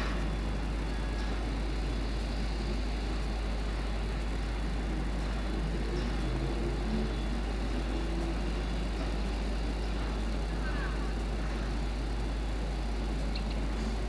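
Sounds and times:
faint road traffic engines: 0.0s - 14.0s
low rumble and hiss: 0.0s - 14.0s.

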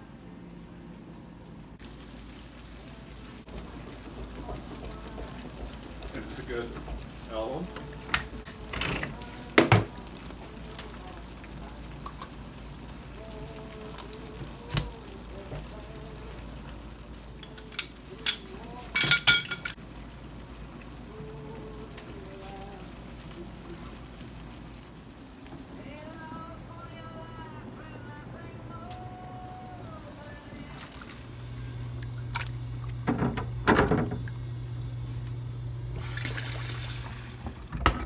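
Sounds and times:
low hum: 0.0s - 37.3s
background voice: 2.8s - 19.7s, 21.0s - 24.3s
metallic clinks: 17.6s - 19.8s.

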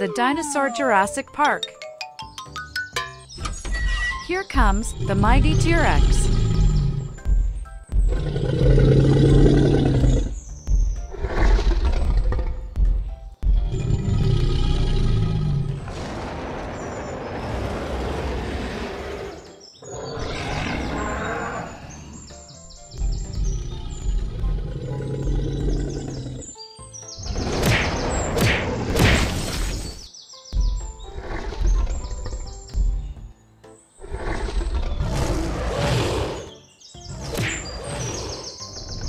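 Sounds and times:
background music: 0.0s - 39.0s
dinosaur roars: 8.0s - 10.4s, 13.7s - 22.1s.

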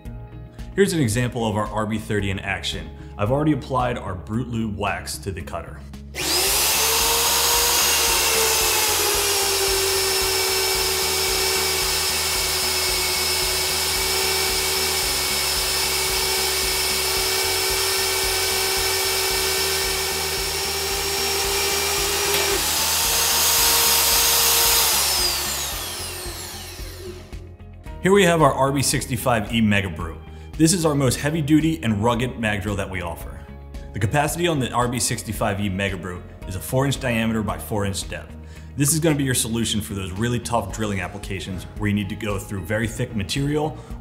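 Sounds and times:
background music: 0.0s - 44.0s
drill press motor whine: 6.2s - 27.3s.

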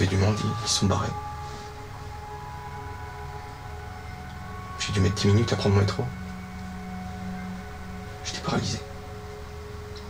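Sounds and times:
droning background score: 0.0s - 10.0s.

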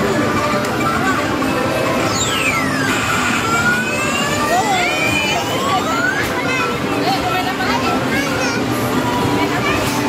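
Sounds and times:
swooping synthetic game tones: 2.0s - 6.3s.

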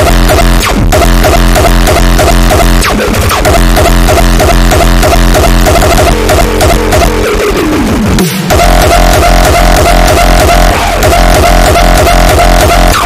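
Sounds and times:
fast kick drum beat: 0.0s - 13.0s
repeating synth lines: 0.0s - 13.0s.

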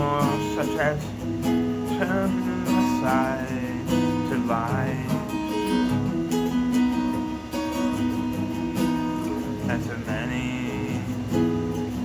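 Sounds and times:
person singing: 0.0s - 1.1s, 2.0s - 5.5s, 9.6s - 11.4s
strummed acoustic guitar: 0.0s - 12.0s.

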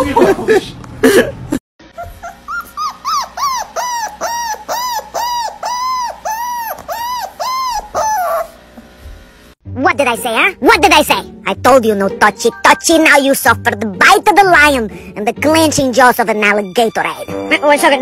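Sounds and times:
puppy whining: 1.8s - 8.7s.

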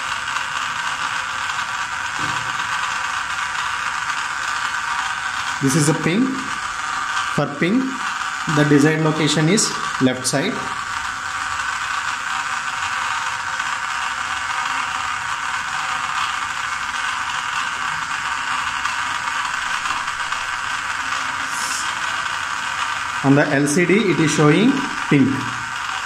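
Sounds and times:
gear motor whirring: 0.0s - 26.0s.

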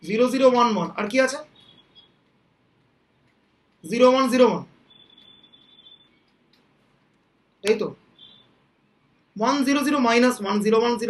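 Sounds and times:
faint high whine: 0.0s - 2.3s, 3.8s - 6.6s, 7.6s - 9.6s.

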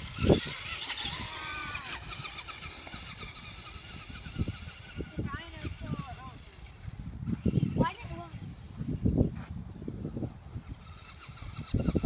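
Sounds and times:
toy truck motor whining: 0.0s - 8.5s, 10.6s - 12.0s.

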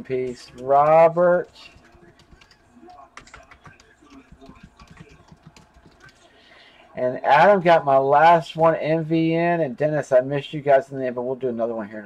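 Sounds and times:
computer keyboard clicks: 1.6s - 2.6s, 3.2s - 6.2s.

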